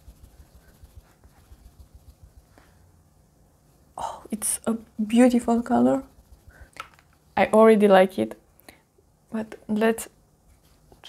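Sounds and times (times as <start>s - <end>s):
sponge patting skin: 0.0s - 2.6s, 5.2s - 7.1s.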